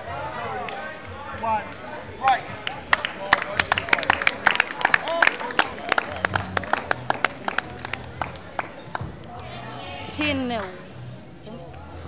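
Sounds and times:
spectators clapping: 0:00.5 - 0:09.3, 0:10.5 - 0:10.8.

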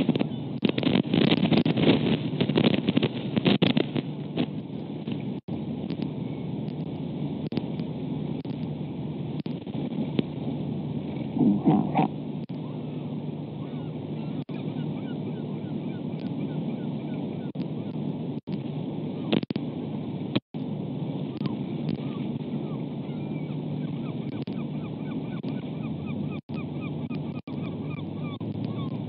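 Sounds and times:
wind on microphone: 0:00.0 - 0:29.0.

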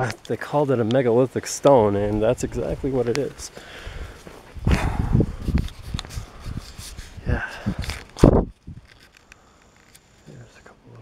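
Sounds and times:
footsteps: 0:02.0 - 0:09.2
camera handling noise: 0:05.4 - 0:10.3.

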